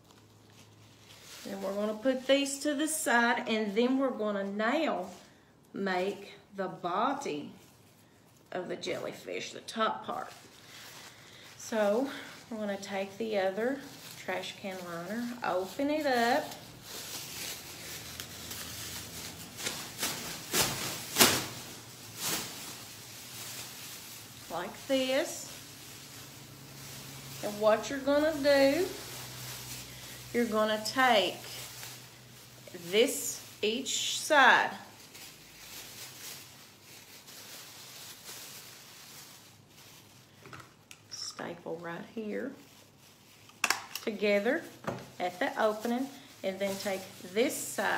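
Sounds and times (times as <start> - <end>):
plastic bag rustling: 0.0 - 47.9.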